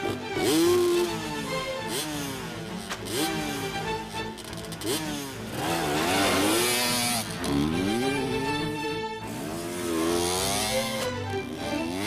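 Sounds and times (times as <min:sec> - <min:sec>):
motorcycle engine revving: 0:00.0 - 0:12.0
music with held string notes: 0:00.0 - 0:12.0.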